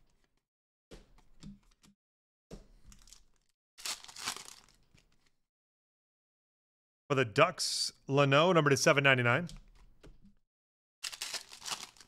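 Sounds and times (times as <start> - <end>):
cards shuffling and rustling: 2.6 - 5.4, 11.0 - 12.0.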